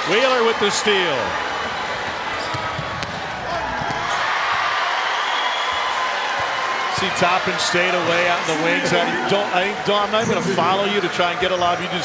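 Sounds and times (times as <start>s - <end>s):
gym crowd noise: 0.0s - 12.0s
basketball bouncing on hardwood: 2.4s - 4.7s.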